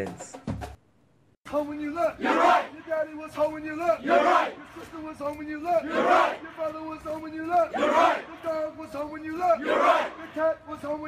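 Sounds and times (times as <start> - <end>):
squad shouting in unison: 1.9 - 5.0, 5.6 - 6.8, 7.4 - 10.7.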